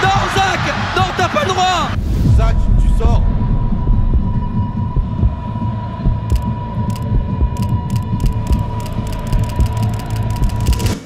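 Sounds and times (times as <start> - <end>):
deep pulsing bass: 2.0 - 11.0
sharp ticks: 6.2 - 11.0.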